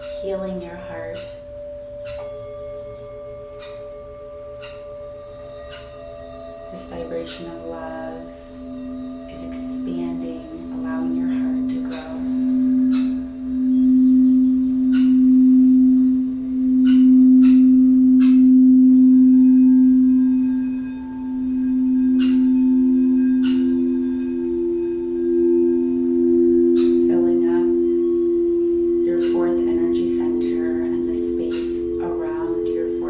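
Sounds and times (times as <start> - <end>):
higher singing bowl tone: 0.0 - 33.0
singing bowl low tone: 0.0 - 33.0.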